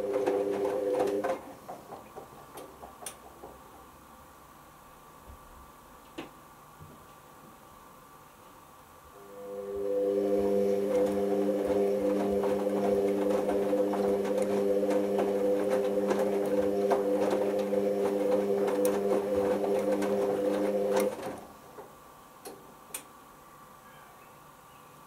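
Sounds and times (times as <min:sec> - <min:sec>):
washing machine motor humming: 0:00.0 - 0:03.2, 0:09.2 - 0:21.8
clicks and taps of tumbling load: 0:00.0 - 0:03.8.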